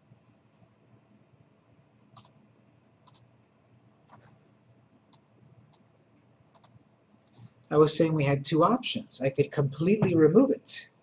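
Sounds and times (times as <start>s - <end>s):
computer mouse clicks: 1.4s - 4.4s, 5.0s - 5.9s, 6.5s - 7.5s.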